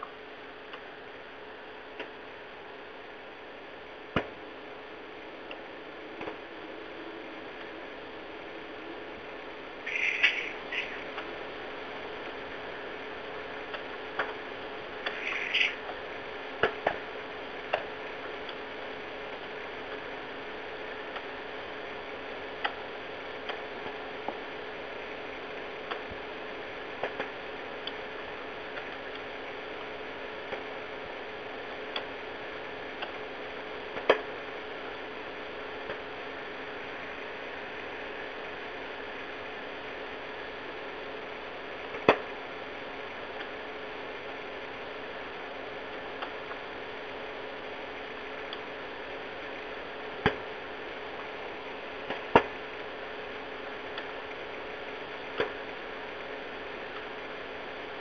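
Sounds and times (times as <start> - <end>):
low hum: 0.0 - 33.8
phone line hiss: 5.3 - 11.6.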